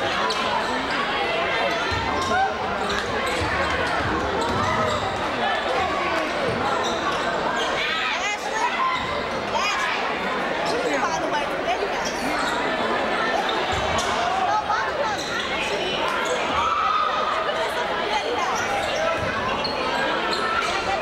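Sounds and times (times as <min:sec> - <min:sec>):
people calling out and talking: 0:00.0 - 0:21.0.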